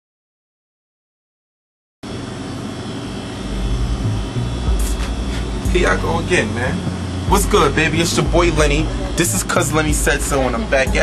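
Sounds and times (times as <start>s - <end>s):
low rumble: 3.4s - 9.0s.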